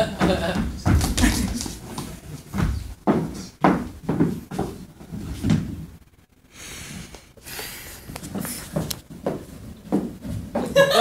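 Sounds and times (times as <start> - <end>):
footsteps on wooden stage: 0.0 - 5.9, 8.2 - 10.9.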